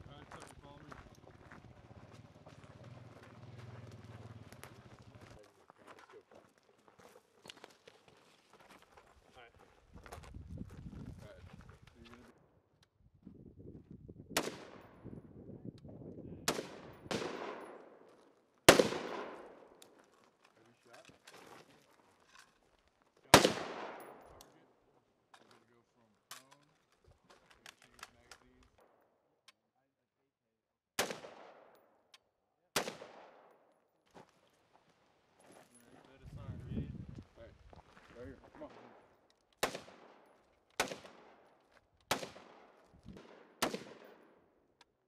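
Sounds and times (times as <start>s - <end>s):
rifle shots with echo: 14.4s - 15.0s, 16.4s - 19.8s, 23.3s - 24.6s, 31.0s - 31.8s, 32.7s - 33.6s, 38.5s - 44.5s.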